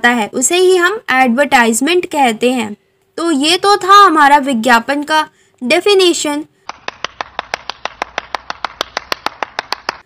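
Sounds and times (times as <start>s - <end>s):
person clapping fast: 6.6s - 10.0s.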